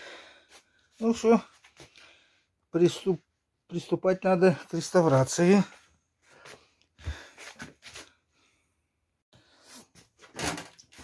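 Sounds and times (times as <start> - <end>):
faint breathing: 0.0 - 0.9, 1.7 - 2.6, 5.7 - 8.8
small movement noises: 0.4 - 2.7, 4.9 - 8.6, 9.4 - 11.0.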